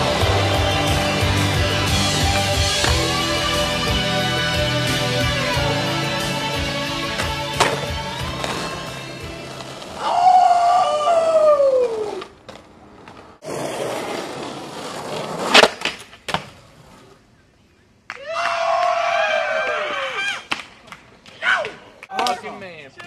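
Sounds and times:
skateboard wheels rolling on concrete: 0.0s - 23.0s.

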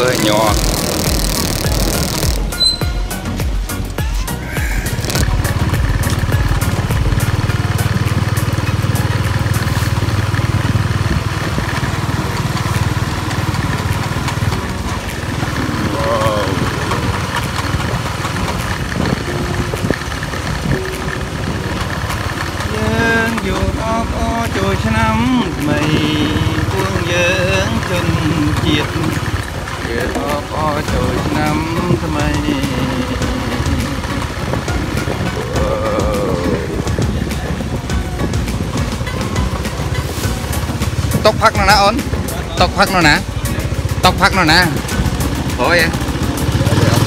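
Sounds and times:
people's voices: 0.0s - 2.4s, 14.8s - 19.8s, 21.0s - 34.4s, 35.2s - 38.2s
small vehicle engine running: 0.0s - 2.8s, 4.8s - 47.0s.

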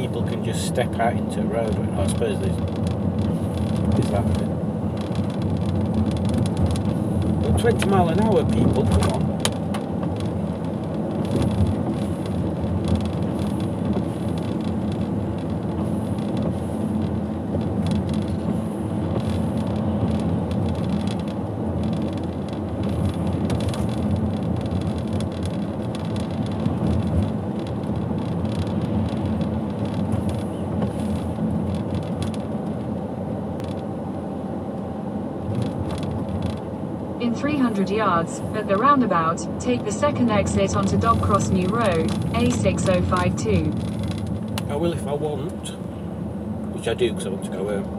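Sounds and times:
car driving on wet road: 0.0s - 47.9s.

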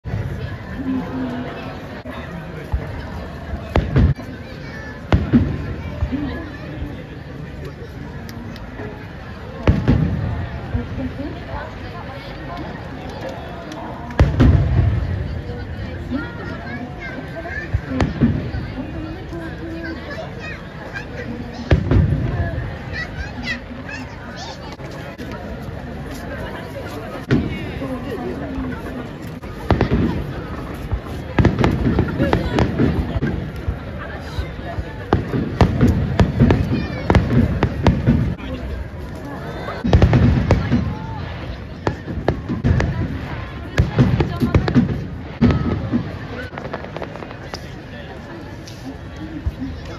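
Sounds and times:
firework shells bursting: 41.9s - 47.8s.

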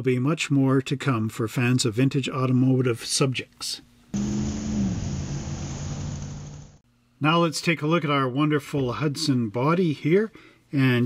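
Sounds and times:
car engine running: 4.2s - 6.8s.

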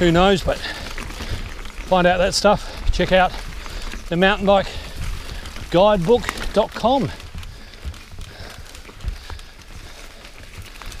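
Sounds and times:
bike clicks and rattles: 0.0s - 11.0s
mountain bike rolling on dirt: 0.0s - 11.0s.

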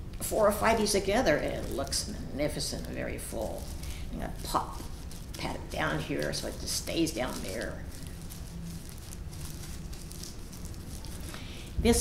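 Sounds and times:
soft pats and rustles of soil: 0.8s - 12.0s.

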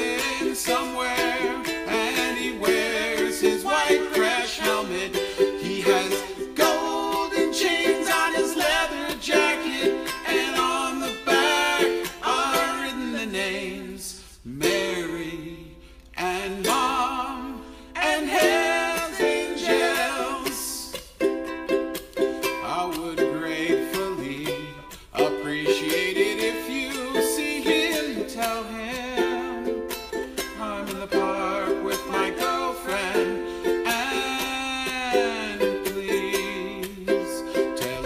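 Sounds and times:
wordless vocal harmony: 0.0s - 21.0s, 22.6s - 38.0s
ukulele strumming: 0.0s - 38.0s.

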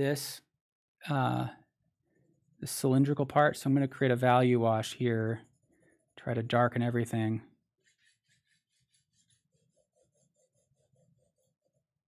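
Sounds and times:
pencil shading on paper: 5.4s - 6.3s, 7.6s - 12.0s.

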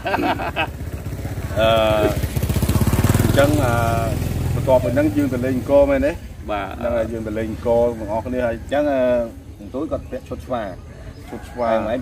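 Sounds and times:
voices talking: 0.0s - 12.0s
small engine passing by: 0.1s - 9.6s.

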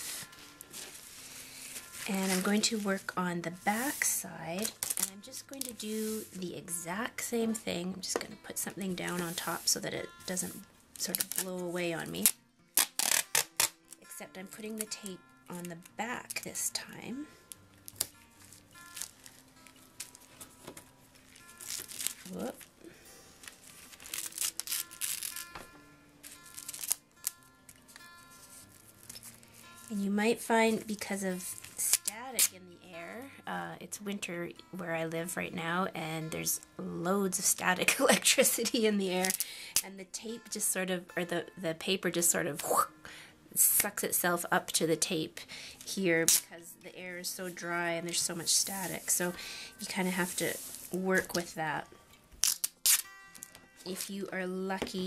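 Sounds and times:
packing tape crinkling on napkin: 0.0s - 3.1s, 3.7s - 6.3s, 9.1s - 11.6s, 12.2s - 14.1s, 17.5s - 22.7s, 23.4s - 30.0s, 31.0s - 32.5s, 38.6s - 39.5s, 48.1s - 51.4s, 52.4s - 54.1s
soft acoustic guitar music: 0.0s - 12.8s, 13.7s - 52.4s.

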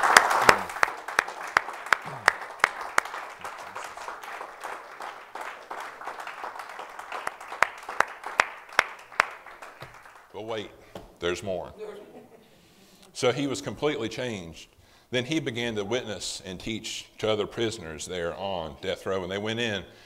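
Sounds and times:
audience applauding: 0.0s - 10.3s
rhythmic clapping: 0.0s - 10.4s.

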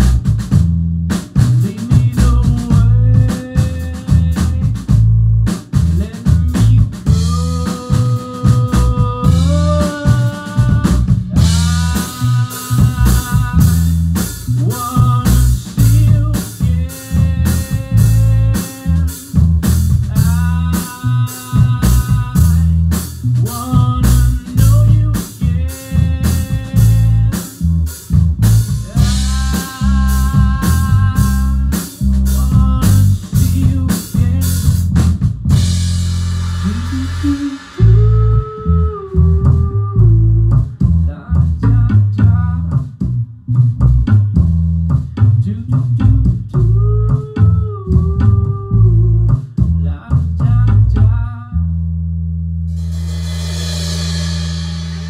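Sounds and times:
drum kit beat: 0.0s - 50.8s, 52.7s - 55.0s
electric bass: 0.0s - 55.0s
bending electric guitar lines: 36.0s - 39.9s
cymbal crash: 52.7s - 55.0s.

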